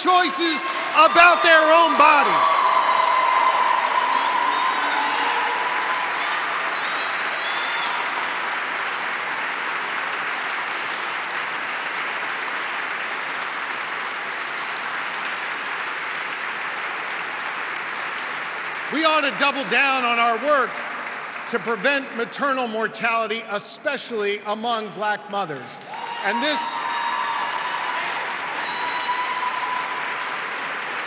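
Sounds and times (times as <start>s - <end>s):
large audience applauding: 0.0s - 23.5s, 25.5s - 31.0s.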